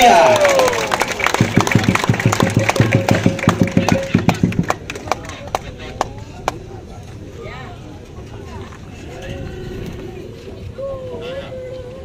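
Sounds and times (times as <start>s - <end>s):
rhythmic percussive thumps and claps: 0.3s - 6.6s.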